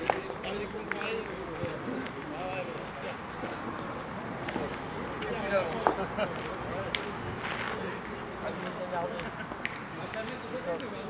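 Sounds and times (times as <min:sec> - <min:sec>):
men talking in background: 0:00.0 - 0:11.0.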